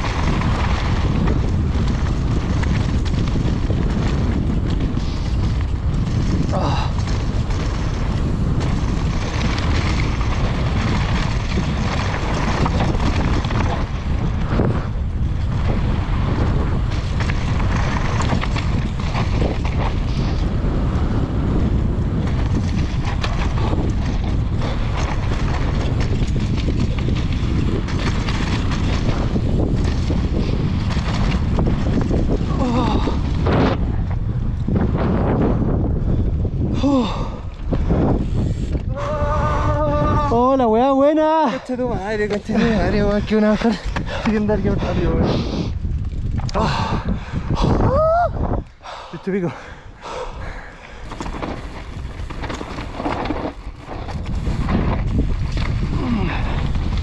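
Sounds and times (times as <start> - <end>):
tyres rolling on gravel: 0.0 - 34.0, 41.2 - 45.2, 50.0 - 57.0
wind buffeting microphone: 0.0 - 57.0.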